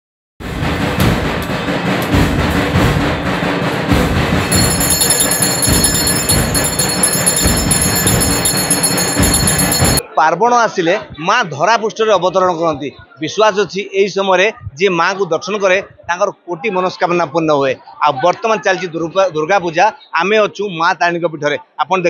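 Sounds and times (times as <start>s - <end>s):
deep drum beat: 0.4s - 10.0s
steady high ringing: 4.5s - 10.0s
temple bells clanging: 4.5s - 10.0s.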